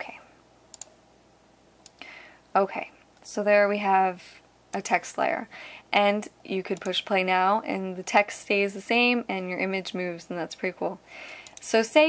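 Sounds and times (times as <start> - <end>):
faint computer clicks: 0.7 - 0.9, 11.4 - 11.8.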